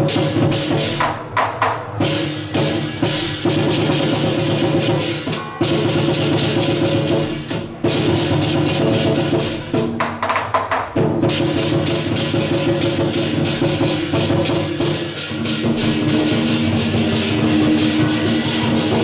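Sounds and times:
fast drum beat: 0.0s - 19.0s
crashing cymbals: 1.9s - 9.9s, 11.2s - 19.0s
ringing gong: 15.7s - 19.0s.

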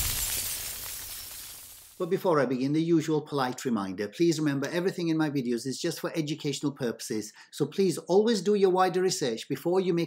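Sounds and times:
bright crashing hiss: 0.0s - 2.0s.

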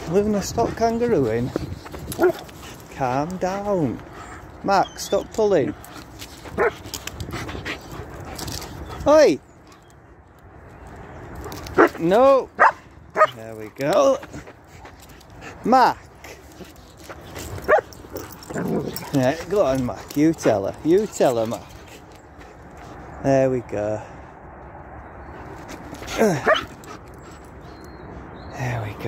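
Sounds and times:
dogs scuffling: 0.0s - 9.1s, 10.7s - 23.2s
dog barking: 6.6s - 6.8s, 12.6s - 13.4s.

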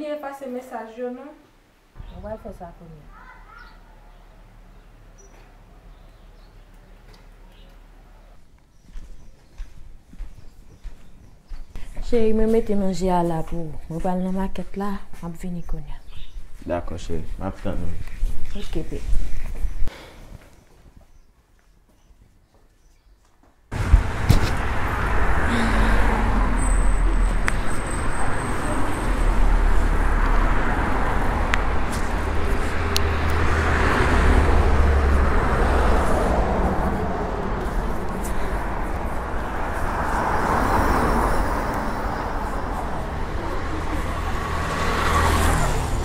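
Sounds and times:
cars passing on road: 1.9s - 8.8s, 23.7s - 46.0s
heavy low rumble: 23.7s - 45.0s.

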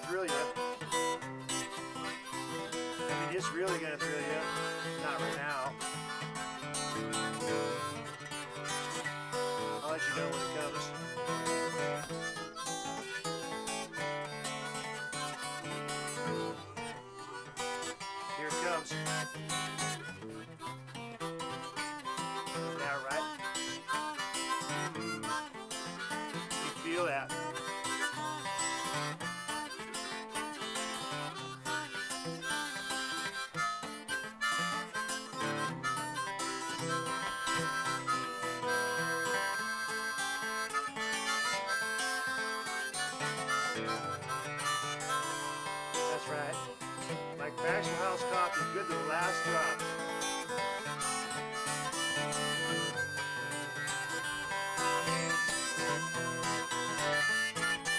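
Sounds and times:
acoustic guitar: 0.0s - 57.9s
harmonica: 0.0s - 57.9s.

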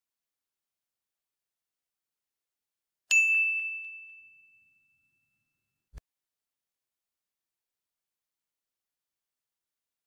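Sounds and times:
notification bell ding: 3.1s - 5.5s.

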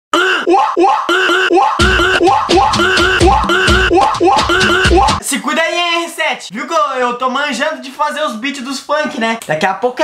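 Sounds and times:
beatboxing mouth pulses: 0.2s - 5.2s.

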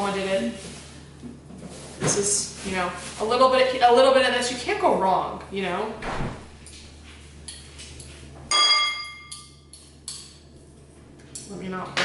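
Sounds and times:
spoon clinking glass bowl: 8.5s - 9.7s.

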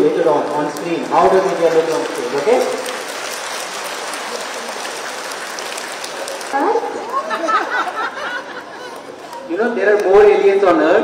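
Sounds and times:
children clapping: 0.0s - 10.2s.

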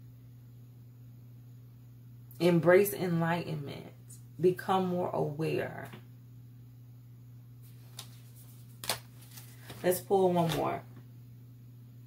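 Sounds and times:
card slapping down: 7.9s - 9.8s.

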